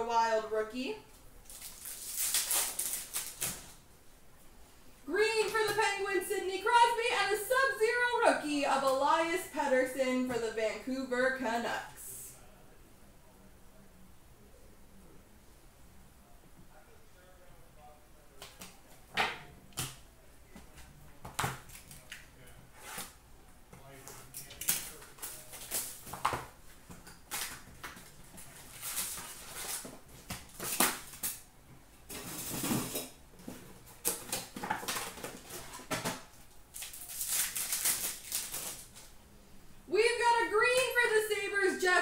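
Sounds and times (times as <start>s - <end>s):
card packs being torn open: 1.4s - 3.8s, 24.5s - 31.4s, 33.9s - 39.1s
wrapper crinkles and card clicks: 1.4s - 3.8s, 24.5s - 31.4s, 36.6s - 39.1s.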